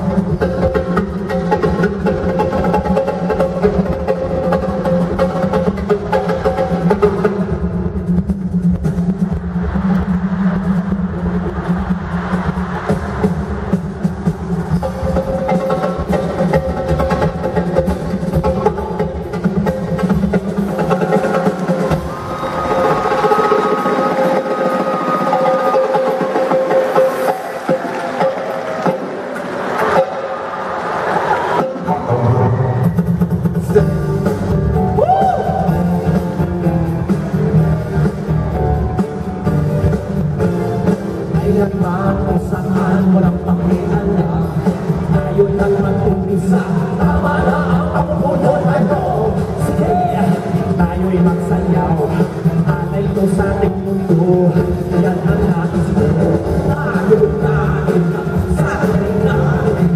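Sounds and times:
live band with latin percussion: 0:00.0 - 0:59.9.

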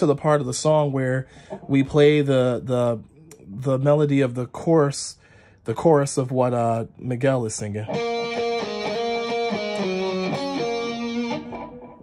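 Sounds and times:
electric guitar melody: 0:07.9 - 0:12.0.

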